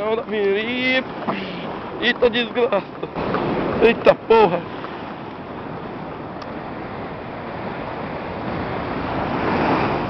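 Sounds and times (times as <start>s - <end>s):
small waves washing on sand: 0.0s - 10.0s.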